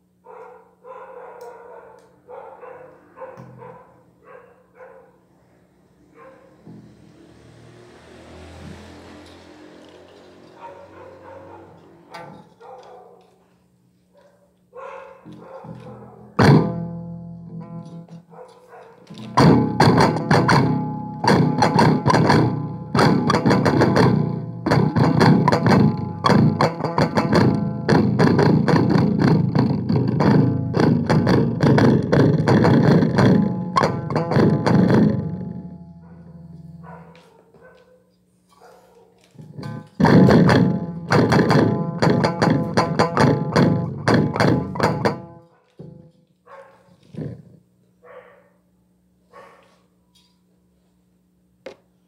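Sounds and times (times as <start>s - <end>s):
electric guitar fast picking: 15.7s - 18.2s, 19.0s - 36.8s, 39.4s - 46.1s.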